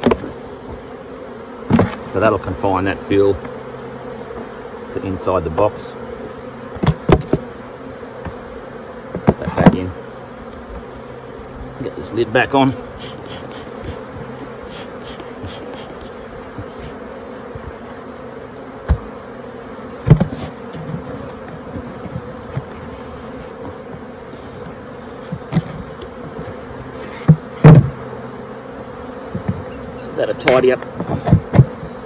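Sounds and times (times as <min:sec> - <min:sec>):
knocks of hive lid and boxes: 0:00.0 - 0:10.9, 0:12.4 - 0:32.0
bees humming: 0:00.0 - 0:32.0.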